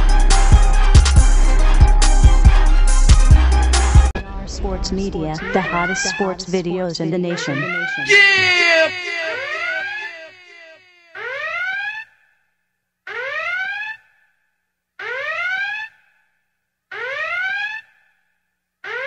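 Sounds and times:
electronic whooping alarm: 0:05.0 - 0:12.0.

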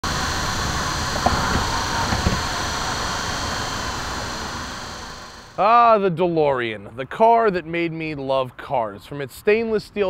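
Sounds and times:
car road and wind noise: 0:00.1 - 0:05.0.

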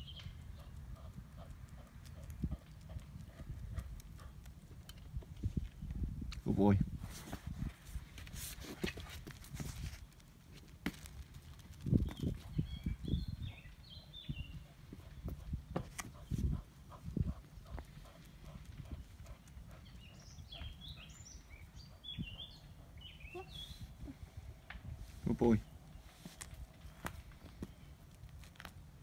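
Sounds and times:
birds chirping: 0:00.0 - 0:05.1, 0:11.8 - 0:28.0
steady low rumble: 0:00.0 - 0:08.2, 0:09.8 - 0:23.1.

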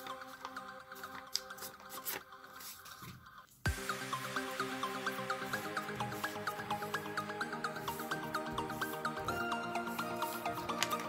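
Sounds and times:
soft background music: 0:00.0 - 0:11.0
paper crackling and folding: 0:09.9 - 0:11.0.

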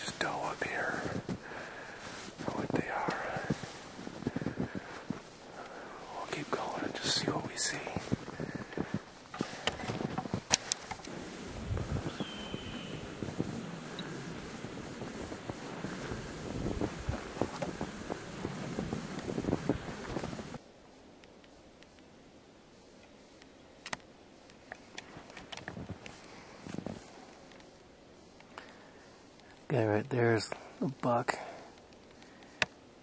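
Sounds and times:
faint whispering: 0:00.0 - 0:09.2, 0:11.5 - 0:18.4, 0:28.6 - 0:32.4
faint hiss: 0:00.0 - 0:33.0
camera handling rustling and clicking: 0:09.3 - 0:11.1.

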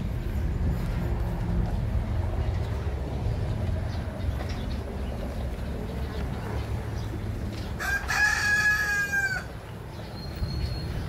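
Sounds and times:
rooster crowing: 0:07.8 - 0:09.6.

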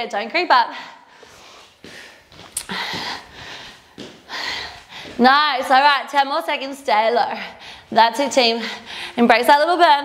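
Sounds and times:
woman breathing hard: 0:00.7 - 0:05.2, 0:07.4 - 0:07.9, 0:08.6 - 0:09.2.

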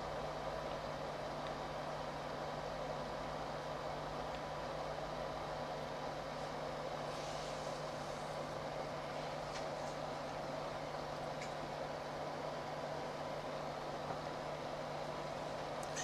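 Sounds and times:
constant low hum: 0:00.0 - 0:16.0.

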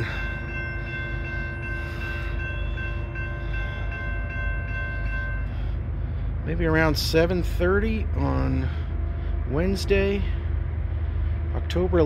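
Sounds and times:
crossing warning bell ringing: 0:00.0 - 0:10.7
low rumble: 0:00.0 - 0:12.0.

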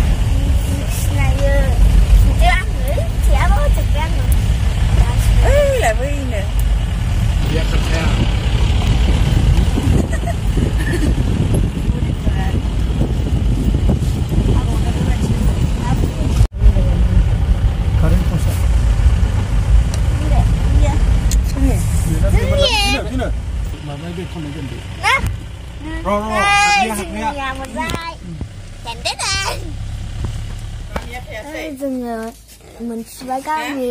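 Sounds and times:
car engine and road rumble: 0:00.0 - 0:33.9.

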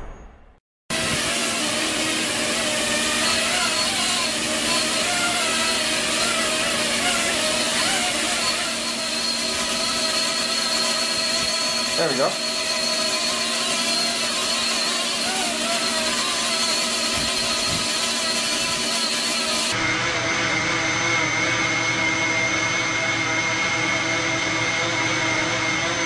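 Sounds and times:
thin high whine: 0:00.0 - 0:26.0
drone propellers whirring: 0:00.9 - 0:26.0.

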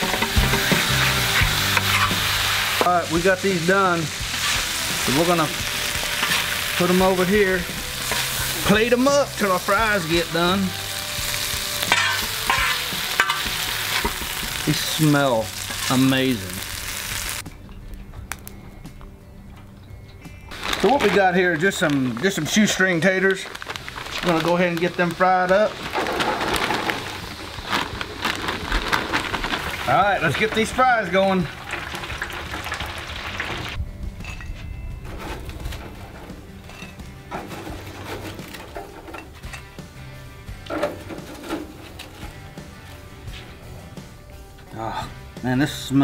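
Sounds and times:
fries sizzling in hot oil: 0:00.0 - 0:17.4, 0:20.5 - 0:33.8
quiet background music: 0:00.0 - 0:46.0
fryer basket metal clinks: 0:11.9 - 0:14.2.

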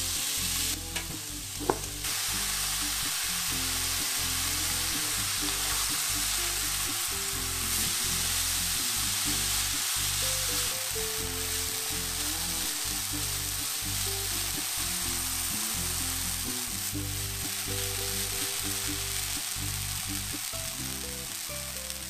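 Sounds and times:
background music: 0:00.0 - 0:22.0
potato sizzling in oil: 0:00.0 - 0:22.0.

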